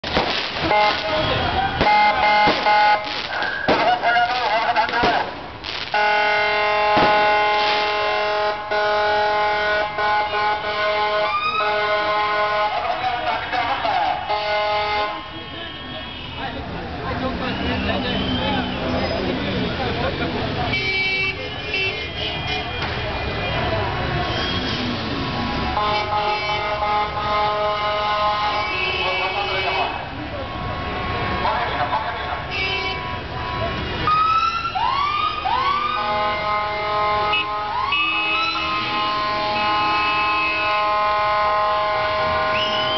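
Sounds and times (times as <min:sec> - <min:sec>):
crowd voices: 0:00.0 - 0:05.9, 0:11.3 - 0:36.5
car horns honking: 0:00.0 - 0:16.6, 0:20.7 - 0:24.9, 0:25.5 - 0:34.1, 0:35.9 - 0:42.9
passing traffic: 0:00.0 - 0:42.9
siren whooping: 0:11.2 - 0:12.0, 0:34.1 - 0:40.9.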